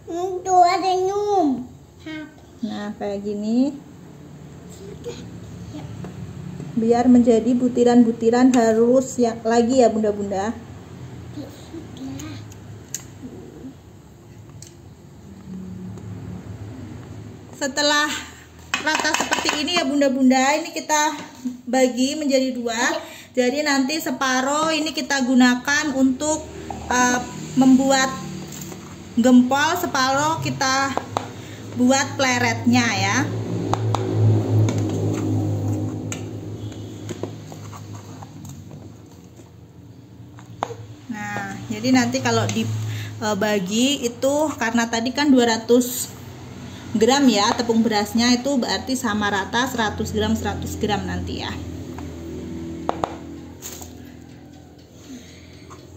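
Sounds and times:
paddle scraping dough in bowl: 36.7s - 38.9s.

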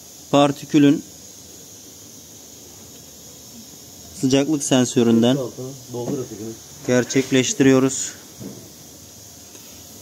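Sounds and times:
faint high-pitched hiss: 0.0s - 10.0s.

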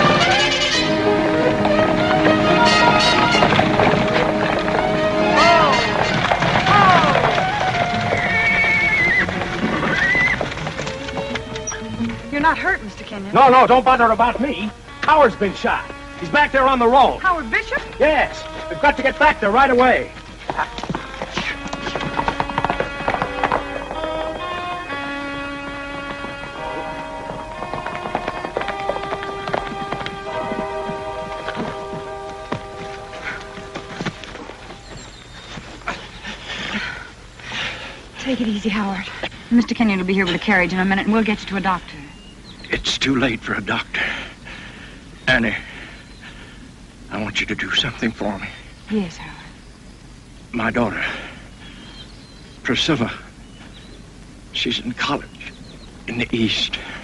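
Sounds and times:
sustained orchestral chords: 0.0s - 8.2s, 8.9s - 35.2s
horses whinnying: 0.0s - 12.7s, 17.6s - 38.2s
background music: 0.0s - 34.9s
hooves clattering: 0.0s - 57.0s.

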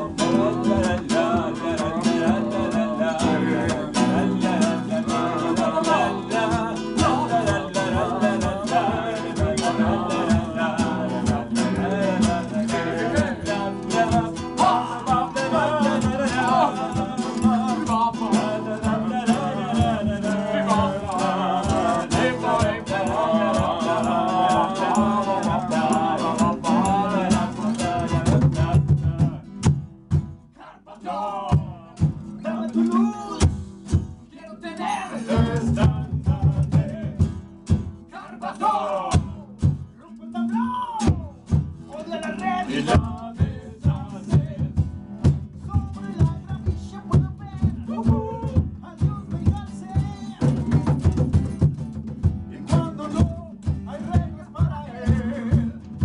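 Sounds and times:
person singing: 0.0s - 29.4s, 30.8s - 33.5s, 45.8s - 51.0s, 52.6s - 56.0s
acoustic guitars strummed: 0.0s - 56.0s.

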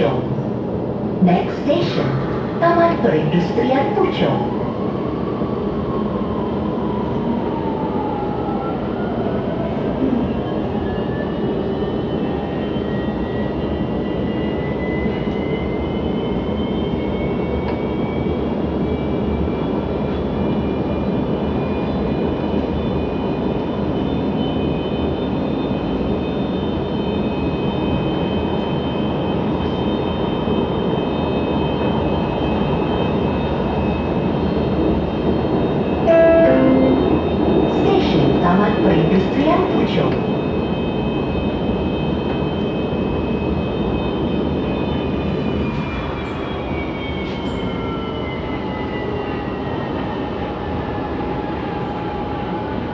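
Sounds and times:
train running on track: 0.0s - 52.9s.

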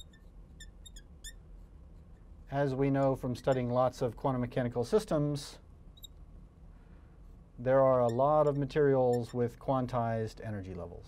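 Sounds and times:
marker squeaking on glass: 0.0s - 2.3s, 3.2s - 4.0s, 5.9s - 6.2s, 7.7s - 9.7s.

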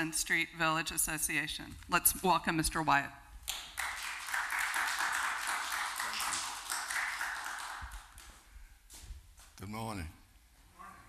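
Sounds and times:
audience applauding: 3.5s - 8.5s.

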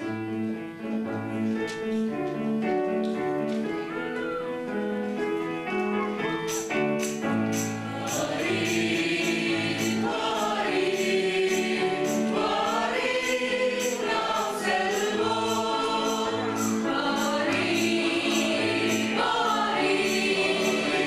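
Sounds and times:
light percussion beat: 6.4s - 21.0s
mixed choir singing: 7.6s - 21.0s.

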